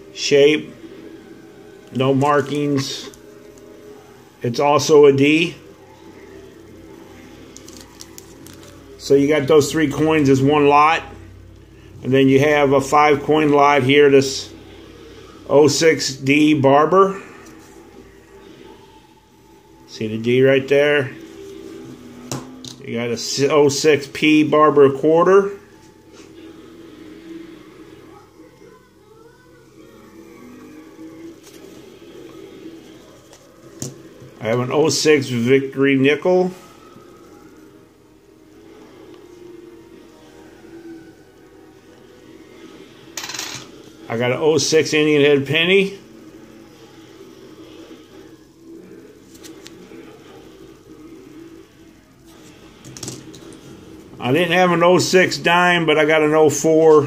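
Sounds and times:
background music: 0.0s - 28.4s
faint background music: 0.0s - 57.0s.

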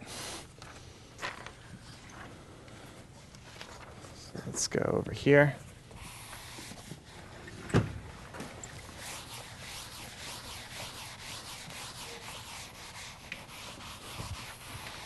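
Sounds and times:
chalkboard eraser rubbing blackboard: 6.0s - 7.2s, 8.8s - 15.0s.

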